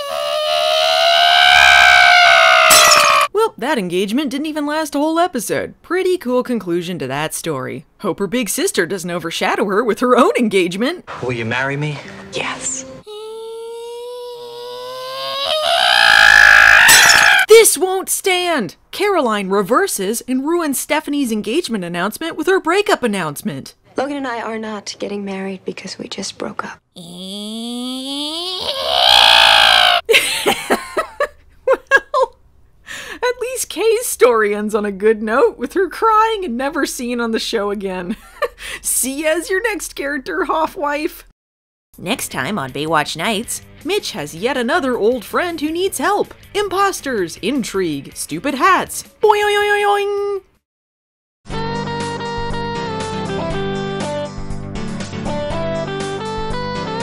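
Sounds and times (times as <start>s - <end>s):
glass shattering: 2.7s - 3.3s, 16.8s - 17.5s.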